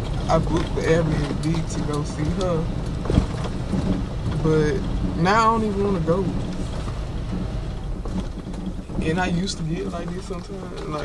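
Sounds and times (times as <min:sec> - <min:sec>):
road and engine rumble in car: 0:00.0 - 0:11.0.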